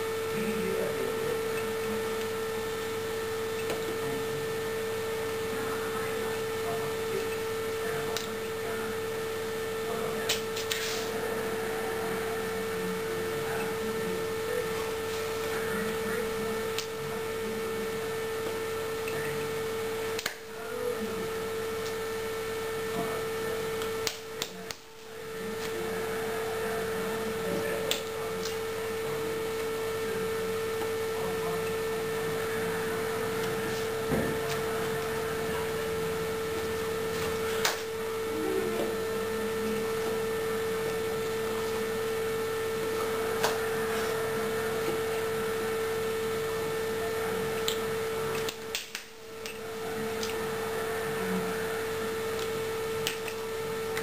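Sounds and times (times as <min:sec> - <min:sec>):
steady electrical hum: 0:00.0 - 0:54.0.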